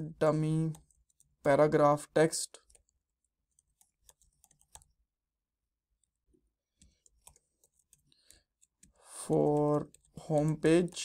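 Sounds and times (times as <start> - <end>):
computer keyboard typing: 0.4 - 1.4, 2.5 - 5.0, 6.0 - 11.0.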